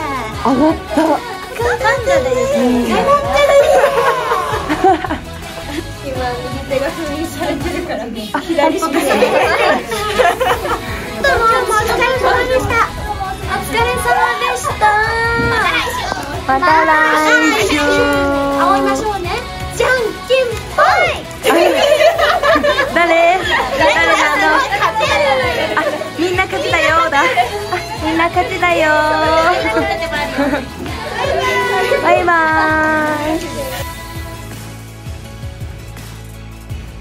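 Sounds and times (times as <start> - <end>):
young women calling out together: 0.0 - 4.8, 11.2 - 34.0
background music with steady beat: 0.0 - 37.0.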